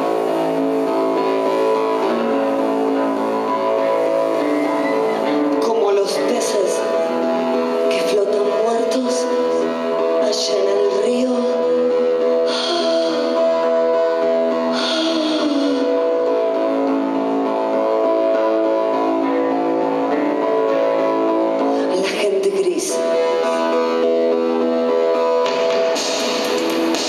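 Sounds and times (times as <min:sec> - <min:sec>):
synthesizer drones: 0:00.0 - 0:27.0
woman singing: 0:07.9 - 0:09.5, 0:10.1 - 0:11.8, 0:12.5 - 0:13.4, 0:14.8 - 0:15.9.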